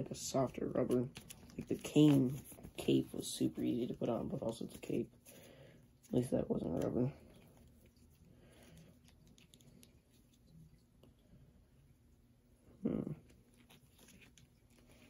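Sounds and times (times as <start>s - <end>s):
plastic toy rustling and clicking: 0.8s - 5.0s.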